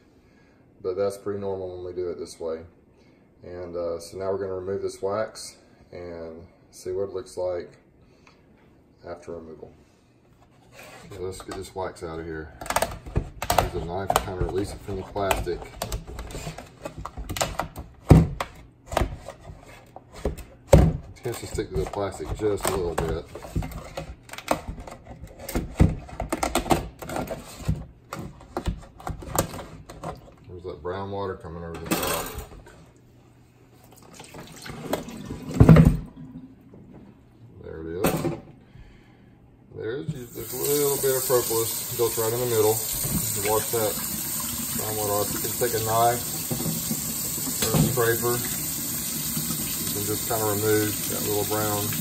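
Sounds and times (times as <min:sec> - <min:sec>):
water pouring into metal sink: 0:40.3 - 0:52.0.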